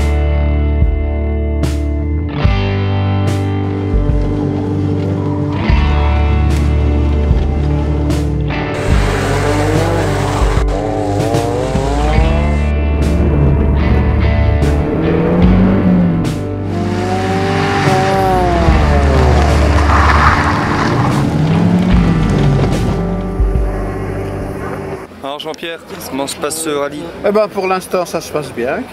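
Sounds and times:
background music: 0:00.0 - 0:25.2
turbocharged car engine revving: 0:07.0 - 0:25.0.

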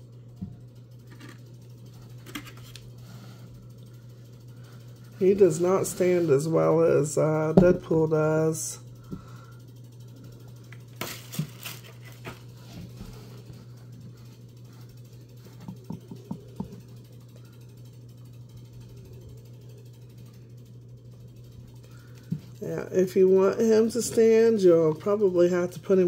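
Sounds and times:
low hum: 0:00.0 - 0:26.0.

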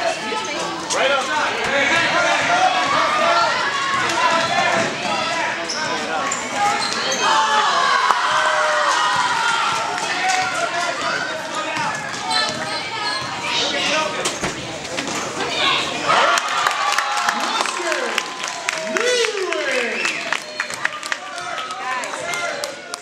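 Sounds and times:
spectators' voices: 0:00.0 - 0:23.0.

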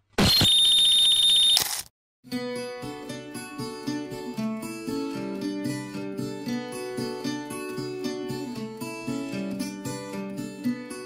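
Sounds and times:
high-pitched electronic beep: 0:00.2 - 0:01.6.

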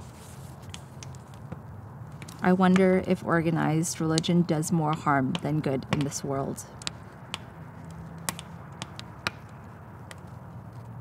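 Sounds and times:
campfire crackling and popping: 0:00.0 - 0:11.0.

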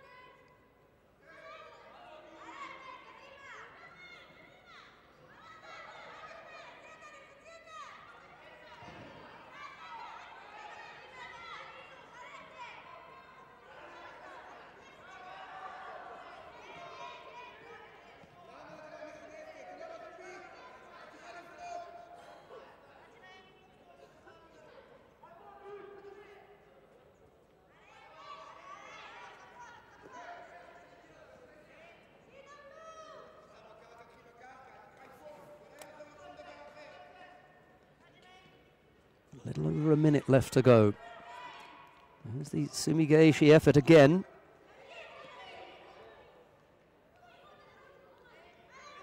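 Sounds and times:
chatter of many voices: 0:00.0 - 0:49.0.

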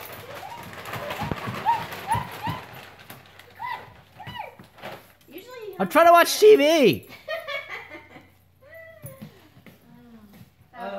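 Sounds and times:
dog feet thumping on hardwood floor: 0:00.0 - 0:05.3.

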